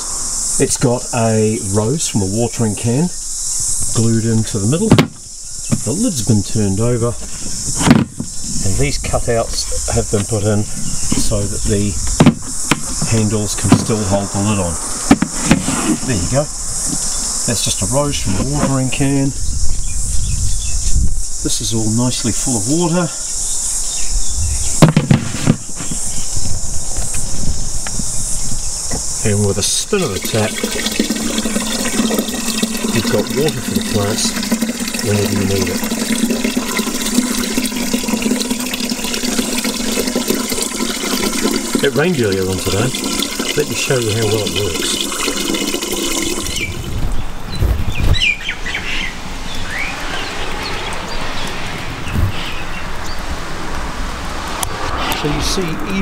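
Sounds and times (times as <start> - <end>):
insects chirring: 0.0 - 56.0
water running into a watering can: 3.8 - 19.4, 21.5 - 23.2, 29.2 - 47.3
low rumbling handling noise: 3.9 - 19.9, 24.4 - 35.8, 50.1 - 56.0
sharp knocks and thumps: 4.8 - 6.0, 7.1 - 8.6, 11.0 - 14.2, 15.0 - 16.1, 24.8 - 26.1, 52.1 - 52.5
low thumps: 7.1 - 21.2, 24.4 - 28.1, 46.4 - 48.3, 51.8 - 52.7.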